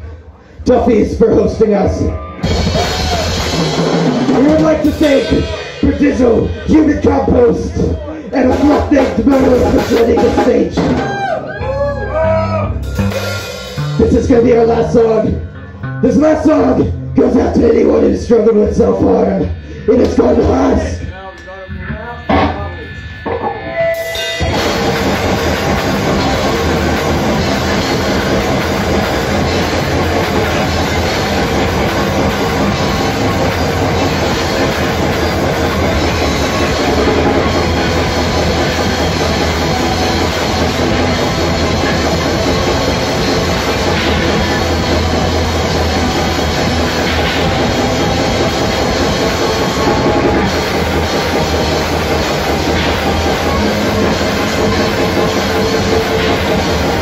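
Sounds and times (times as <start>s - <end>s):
metal band playing live: 0.8s - 57.0s.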